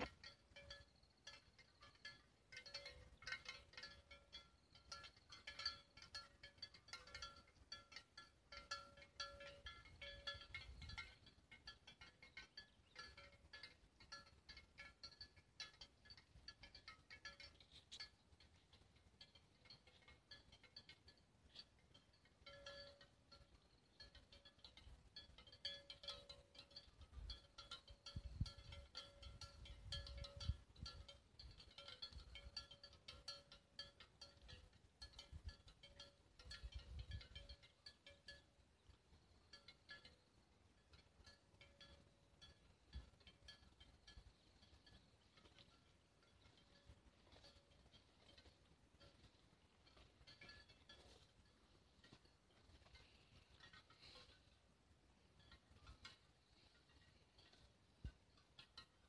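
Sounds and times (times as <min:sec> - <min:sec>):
cowbells clinking: 0:00.0 - 0:59.0.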